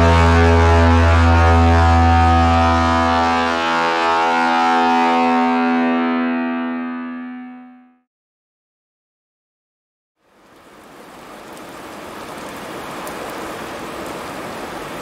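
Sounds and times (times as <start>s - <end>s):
rock chord on guitar: 0.0s - 3.5s, 4.9s - 8.0s
low bass note: 0.0s - 8.0s.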